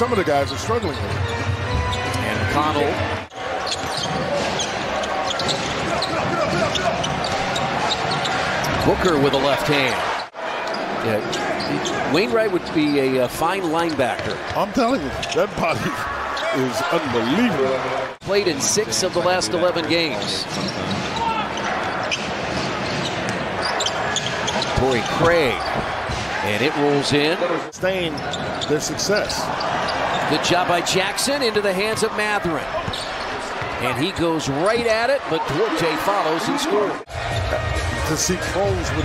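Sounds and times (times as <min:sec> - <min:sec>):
murmur of arena crowd: 0:00.0 - 0:39.0
sneaker squeaks: 0:03.5 - 0:08.9, 0:10.1 - 0:13.0, 0:14.9 - 0:15.5, 0:20.0 - 0:26.0, 0:28.1 - 0:30.4, 0:32.7 - 0:33.8.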